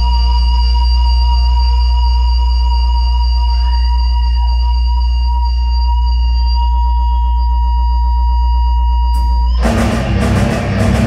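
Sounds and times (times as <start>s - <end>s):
bass guitar drone: 0.0s - 11.0s
drums and electric guitars: 9.2s - 11.0s.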